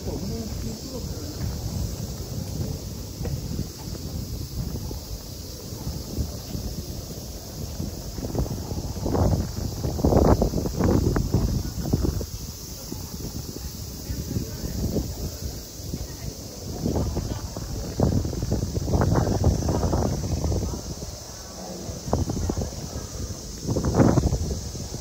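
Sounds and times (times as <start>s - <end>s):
footsteps: 0.0s - 9.5s
wind buffeting microphone: 0.0s - 25.0s.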